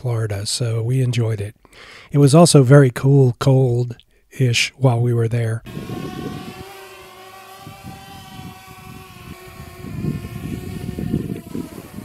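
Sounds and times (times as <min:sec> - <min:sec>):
wind rumble on microphone: 0:05.6 - 0:06.8, 0:07.5 - 0:12.0
drone propellers humming: 0:05.6 - 0:12.0.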